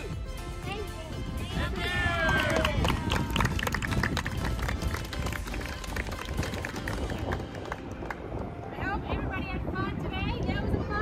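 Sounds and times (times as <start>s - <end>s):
people applauding: 2.1s - 8.4s.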